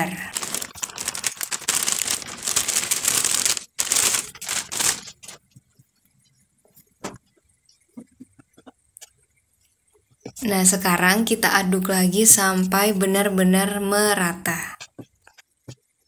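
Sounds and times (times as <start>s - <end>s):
plastic bag crinkling: 0.0s - 5.5s
flour pouring: 0.2s - 5.4s.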